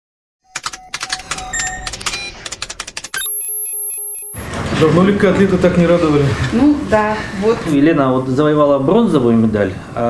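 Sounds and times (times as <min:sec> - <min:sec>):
flurry of clicks and synthetic blips: 0:00.4 - 0:04.4.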